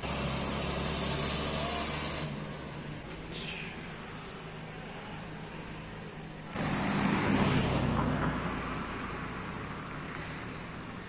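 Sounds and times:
vehicle engine hum: 0:00.0 - 0:11.0.

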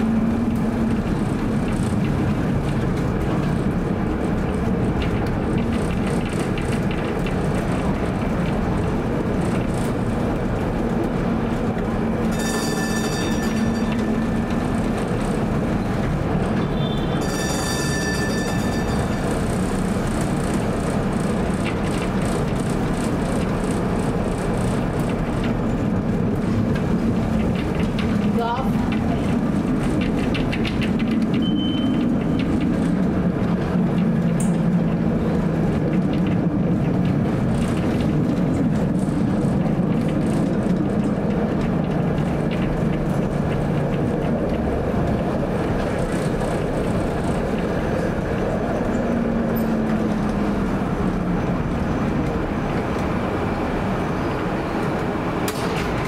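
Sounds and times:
streetcar running on rails: 0:00.0 - 0:56.0
rising squeal: 0:12.2 - 0:14.8, 0:16.6 - 0:19.5.

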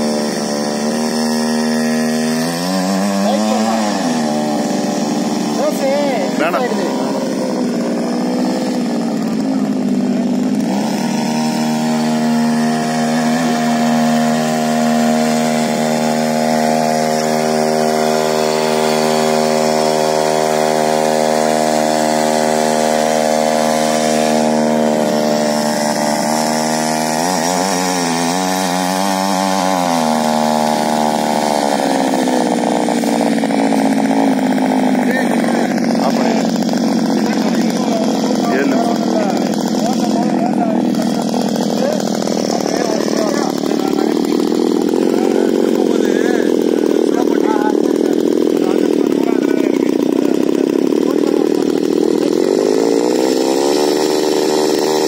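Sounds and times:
small petrol engine running: 0:00.0 - 0:55.0
tines churning soil: 0:00.0 - 0:55.0.

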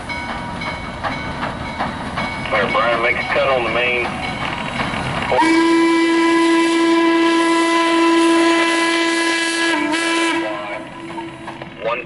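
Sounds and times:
running train: 0:00.0 - 0:12.0
steam locomotive whistle blast: 0:05.3 - 0:11.5.

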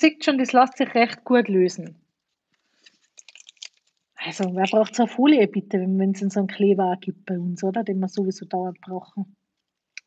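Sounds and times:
paper card handling: 0:02.4 - 0:04.1.

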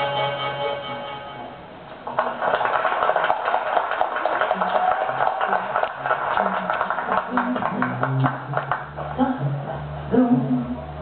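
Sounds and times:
audience applause: 0:02.0 - 0:09.4
voices: 0:04.4 - 0:11.0.

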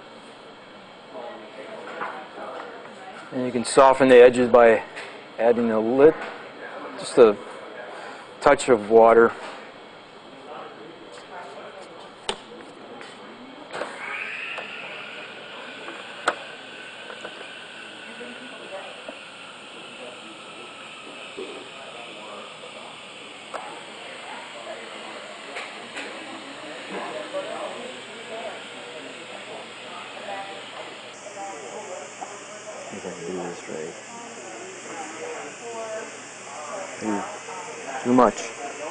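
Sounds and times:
faint voices: 0:00.0 - 0:38.9
electric blower motor running: 0:13.7 - 0:38.9.

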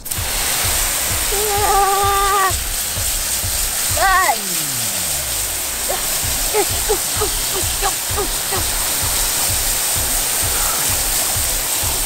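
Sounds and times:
hose spray hissing on concrete: 0:00.0 - 0:12.0
voice-like sliding pitch: 0:03.9 - 0:08.9.

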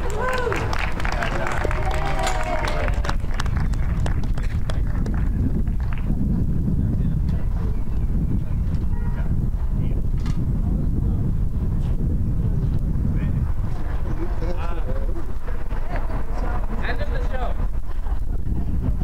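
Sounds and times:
faint voices: 0:00.0 - 0:19.0
wind buffeting microphone: 0:00.0 - 0:19.0.

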